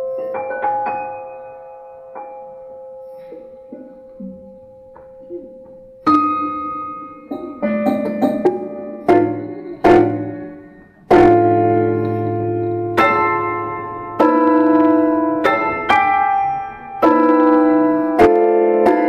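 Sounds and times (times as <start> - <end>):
prepared piano notes and chords: 0.0 - 19.0.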